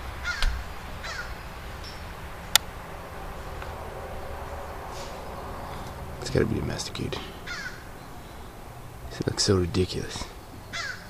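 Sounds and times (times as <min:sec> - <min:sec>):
bird calls: 0:00.0 - 0:11.0.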